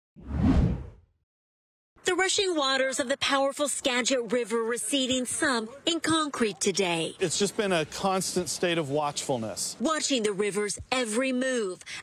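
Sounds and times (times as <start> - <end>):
whoosh sound effect: 0.2 - 1.0.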